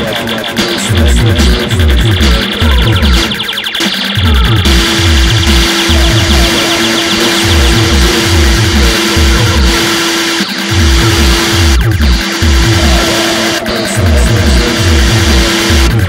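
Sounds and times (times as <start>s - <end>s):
retro synth electronic music: 0.0s - 16.0s.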